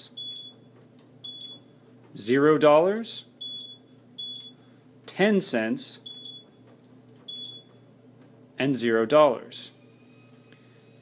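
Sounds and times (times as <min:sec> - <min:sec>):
steady low hum: 0:00.0 - 0:11.0
keypad beeps: 0:00.2 - 0:01.7, 0:03.4 - 0:04.6, 0:06.0 - 0:06.6, 0:07.3 - 0:07.8.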